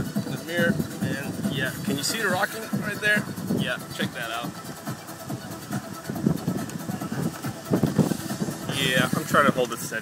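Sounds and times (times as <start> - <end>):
boat engine idling: 0.0 - 10.0.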